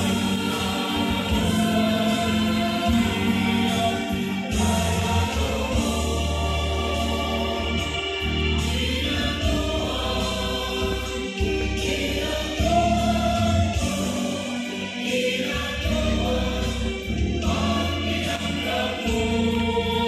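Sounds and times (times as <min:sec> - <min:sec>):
choir singing: 0:00.0 - 0:20.0.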